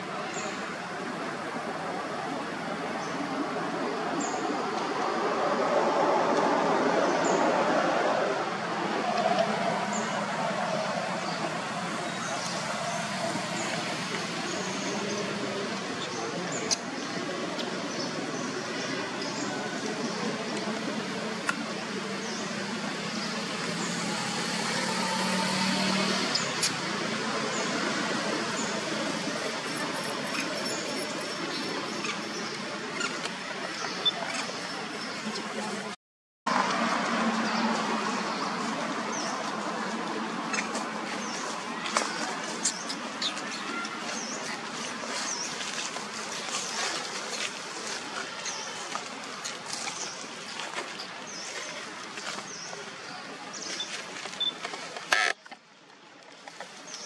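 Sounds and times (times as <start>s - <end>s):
outdoor background noise: 0.0s - 57.0s.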